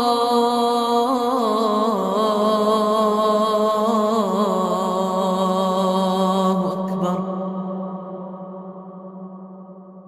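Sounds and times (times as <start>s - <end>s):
voice chanting a long note: 0.0s - 9.2s.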